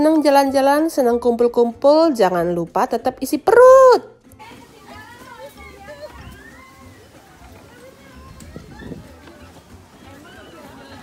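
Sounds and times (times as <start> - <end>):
distant children and adults talking: 4.2 - 11.0.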